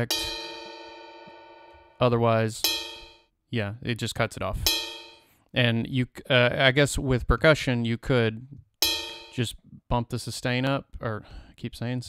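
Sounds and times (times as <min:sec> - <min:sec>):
struck metal bell-like ring: 0:00.0 - 0:03.2, 0:04.7 - 0:05.3, 0:08.8 - 0:09.4.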